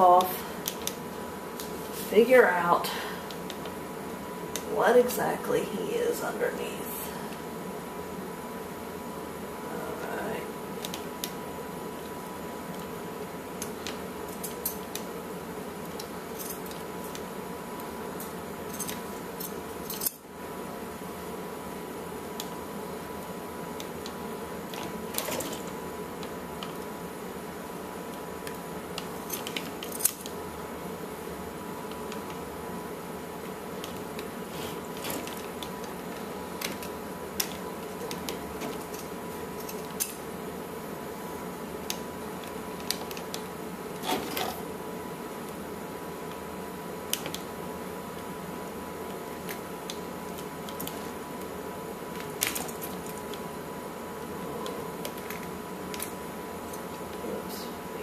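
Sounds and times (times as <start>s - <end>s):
background hum: 0.0s - 58.0s.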